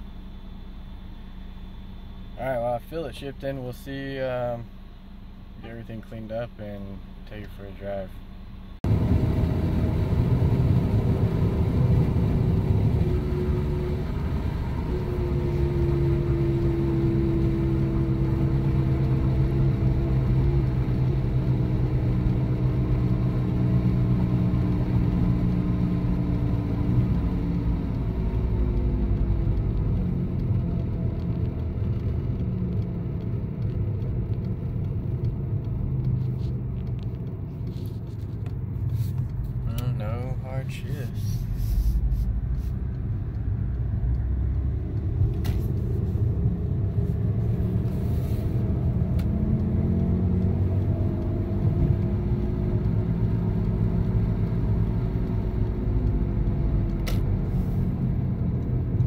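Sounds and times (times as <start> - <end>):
car engine running: 0.0 - 59.0
road rumble: 0.0 - 59.0.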